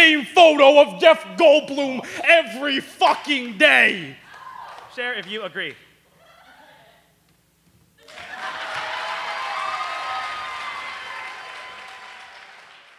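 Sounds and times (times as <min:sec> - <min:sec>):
audience applause: 0:08.0 - 0:12.9.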